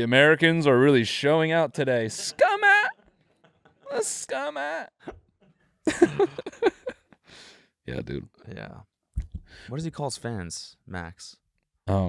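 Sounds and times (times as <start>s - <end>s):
man laughing: 2.2s - 3.0s, 5.9s - 7.2s.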